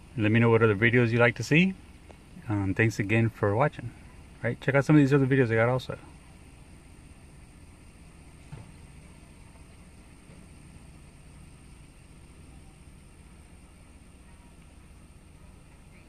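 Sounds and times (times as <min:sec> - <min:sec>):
truck engine idling: 0:00.0 - 0:16.0.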